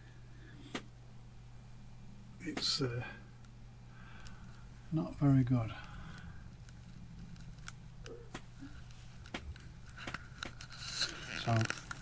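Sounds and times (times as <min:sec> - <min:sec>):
low steady hum: 0:00.0 - 0:12.0
faint clicks and taps: 0:05.8 - 0:10.7.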